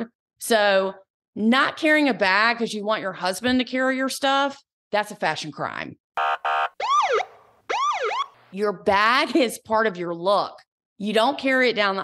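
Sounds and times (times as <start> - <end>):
police siren wails: 6.2 - 8.4.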